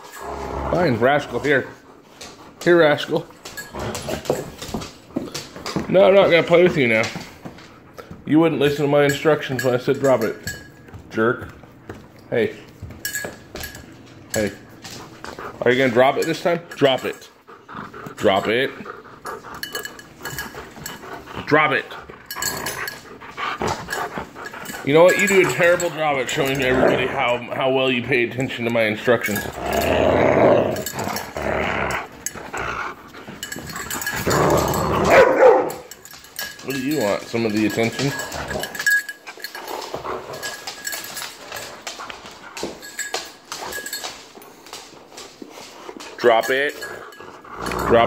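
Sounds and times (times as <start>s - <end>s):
dog panting: 0.0s - 48.0s.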